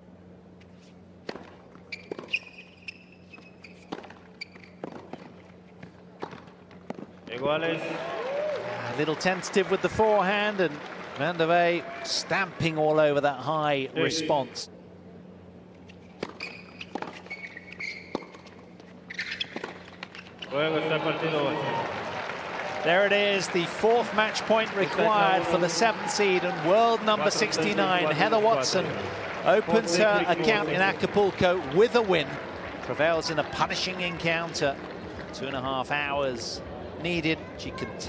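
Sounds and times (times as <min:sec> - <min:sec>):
low steady hum: 0:00.0 - 0:38.0
shoes squeaking on court: 0:00.6 - 0:07.4, 0:15.8 - 0:20.6
tennis ball bounces: 0:01.2 - 0:07.4, 0:16.1 - 0:20.4.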